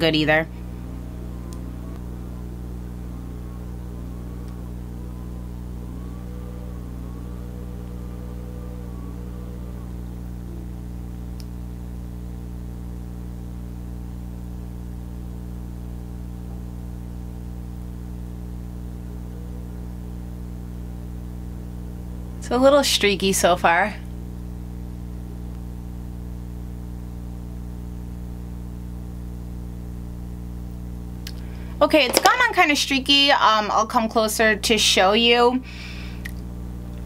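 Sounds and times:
faint wavering tones: 0.0 - 11.4, 18.4 - 24.1
steady low hum: 0.0 - 37.0.

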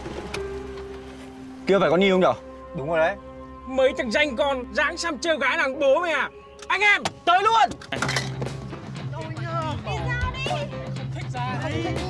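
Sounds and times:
background music with low note: 0.0 - 12.0
voices calling and shouting: 1.7 - 12.0.

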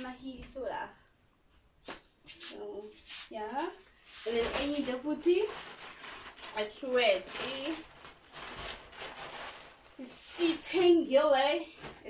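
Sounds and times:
plastic bag rustling and crinkling: 3.4 - 12.0.

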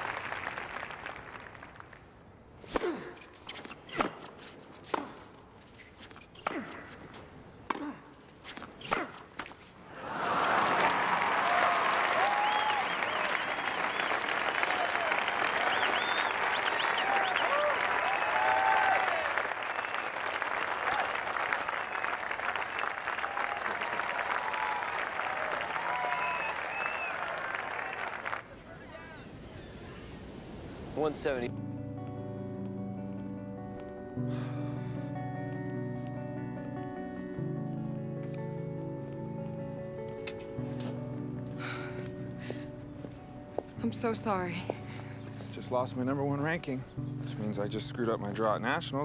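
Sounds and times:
crowd applause and cheering: 0.0 - 1.8, 9.9 - 28.5
crowd shouts and whistles: 11.5 - 20.0, 24.4 - 28.2.

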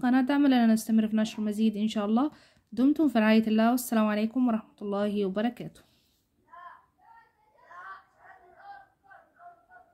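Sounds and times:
distant voice speaking: 6.5 - 9.9.

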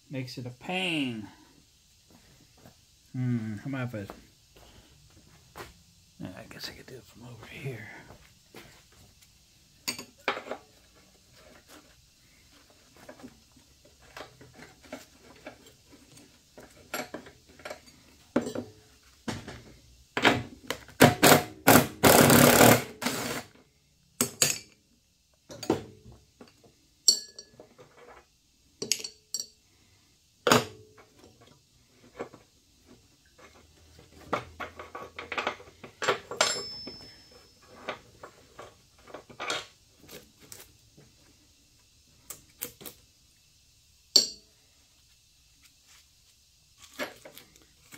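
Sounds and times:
wrench clinking on metal: 27.0 - 27.6, 28.8 - 29.6, 35.2 - 37.7, 44.1 - 44.4.

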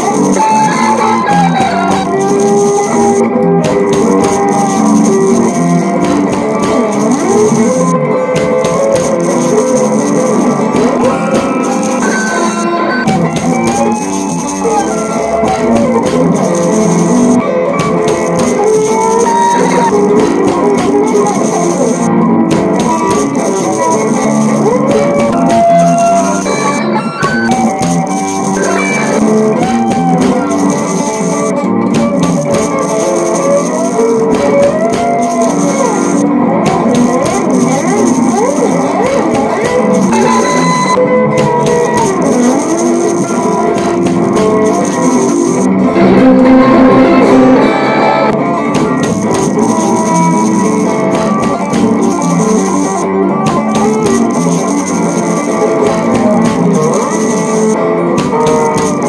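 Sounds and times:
guitar solo with bent notes: 0.0 - 52.4
maracas shaking: 0.0 - 59.0.

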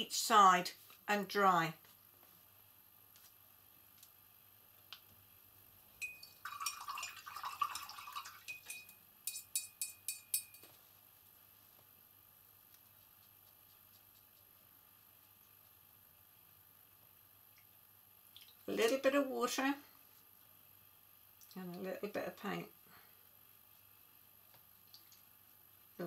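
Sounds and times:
paintbrush clinking in glass jar: 6.0 - 10.7
brush tapping on glass jar: 8.5 - 10.7.

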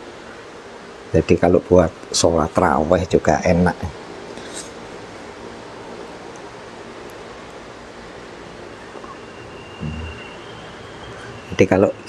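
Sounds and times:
background hiss: 0.0 - 12.0
faint low hum: 0.0 - 12.0
person humming: 9.8 - 10.2.

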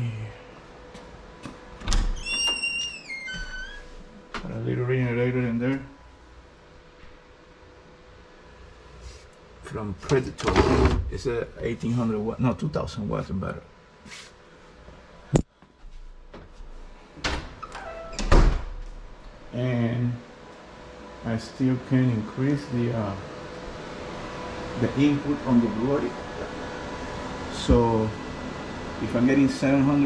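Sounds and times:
door hinges squeaking: 1.8 - 4.0, 17.2 - 18.6.

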